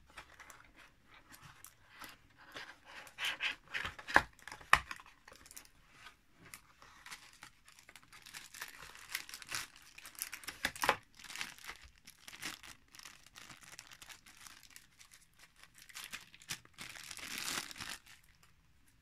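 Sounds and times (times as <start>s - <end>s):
cardboard packaging rustling: 0.0s - 18.6s
plastic bag crinkling: 6.5s - 18.6s.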